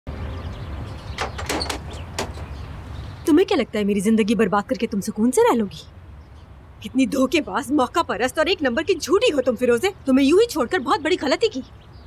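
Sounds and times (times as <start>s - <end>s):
door handle and latch clicking: 1.2s - 2.6s.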